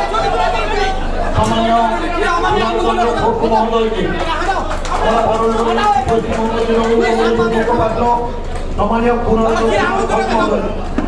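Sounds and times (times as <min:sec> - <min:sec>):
voices talking in a hall: 0:00.0 - 0:11.0.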